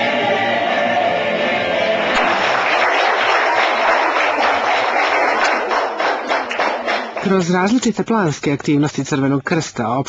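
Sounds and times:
song: 0.0s - 4.5s
audience clapping: 1.8s - 8.3s.

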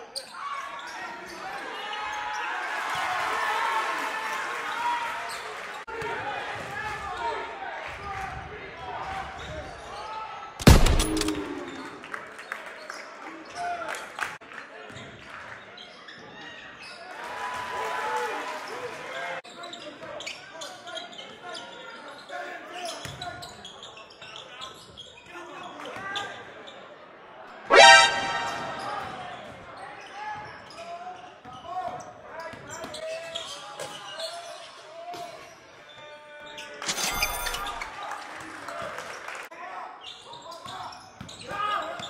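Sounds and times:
voices of players and spectators: 0.0s - 10.6s, 18.5s - 36.9s, 37.7s - 42.0s
loud pitched sound: 27.7s - 29.2s.

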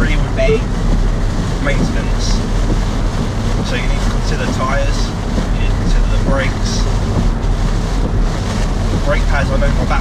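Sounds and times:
car cabin road and engine noise: 0.0s - 10.0s.

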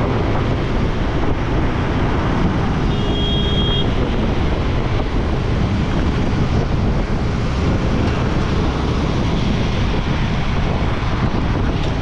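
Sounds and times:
motorcycle road noise: 0.0s - 12.0s
wind rush on microphone: 0.0s - 12.0s.

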